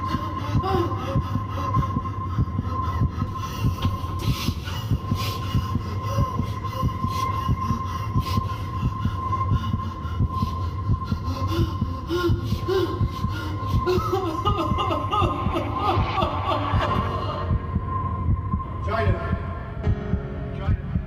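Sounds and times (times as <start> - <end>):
low rumble: 0.0 - 21.0
low thumps pulsing: 0.0 - 21.0.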